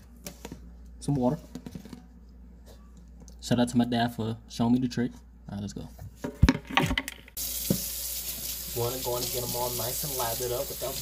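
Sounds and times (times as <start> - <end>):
faucet running into sink: 7.4 - 11.0.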